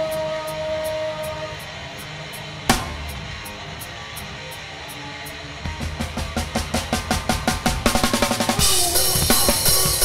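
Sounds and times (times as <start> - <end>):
sustained electric guitar note: 2.7 - 3.6.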